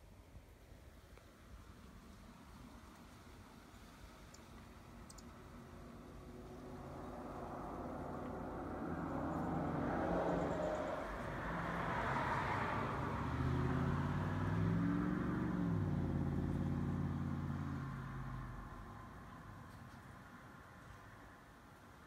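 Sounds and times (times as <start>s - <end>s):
vehicle driving past: 5.5s - 19.9s.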